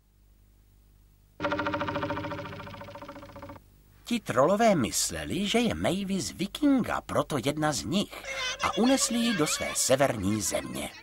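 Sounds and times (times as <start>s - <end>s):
pulsing cartoon chord: 1.4s - 3.6s.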